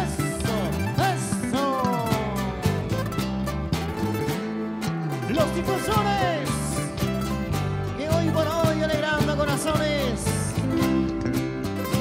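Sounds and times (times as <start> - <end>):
bass line: 0.0 - 12.0
plucked strings: 0.0 - 12.0.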